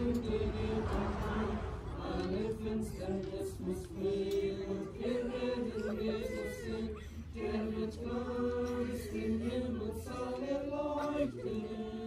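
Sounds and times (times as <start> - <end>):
group singing a hymn unaccompanied: 0.0 - 12.0.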